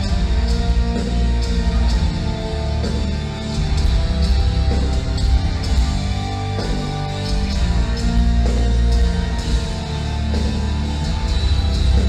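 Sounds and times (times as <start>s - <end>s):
metal band playing live: 0.0s - 12.0s.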